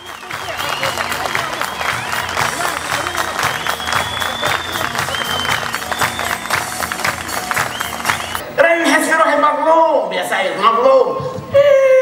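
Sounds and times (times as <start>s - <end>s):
audience applauding: 0.0s - 8.4s
music: 0.0s - 8.4s
long high whistles: 3.3s - 6.7s, 7.6s - 8.4s.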